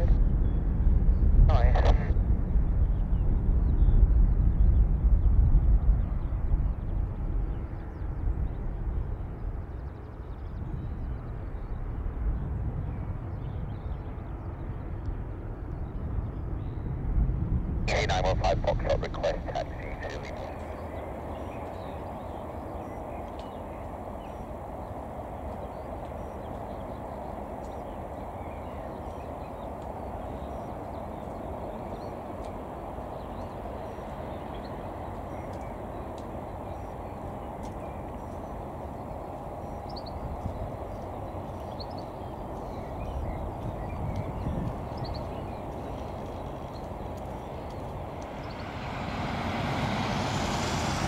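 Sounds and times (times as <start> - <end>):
jet engine taxiing: 13.0 - 51.0
faint bird chirps: 17.9 - 48.6.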